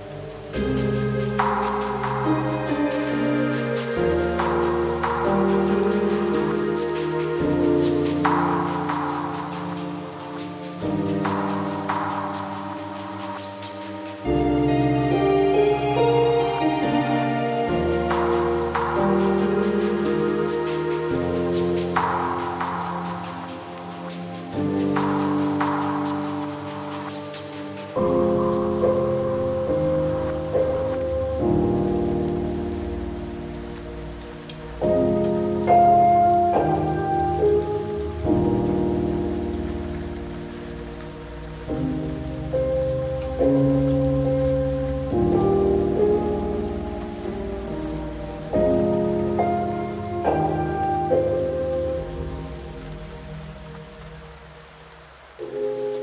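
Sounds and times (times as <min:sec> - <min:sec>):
rain pattering: 0:00.0 - 0:56.0
soft piano chords: 0:00.0 - 0:56.0.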